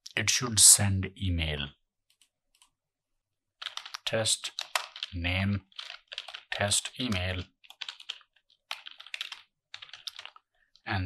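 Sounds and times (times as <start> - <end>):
computer keyboard typing: 3.6 - 10.8.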